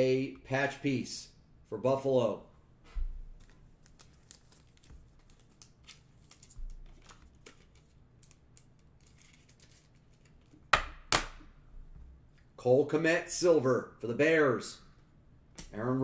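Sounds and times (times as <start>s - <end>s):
cards and sleeves rustling: 3.3s - 10.5s.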